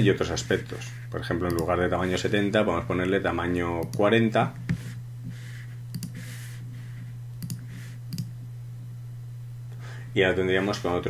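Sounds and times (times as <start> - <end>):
steady low hum: 0.0 - 11.0
computer mouse clicking: 1.4 - 1.7, 5.9 - 6.2, 7.4 - 8.3.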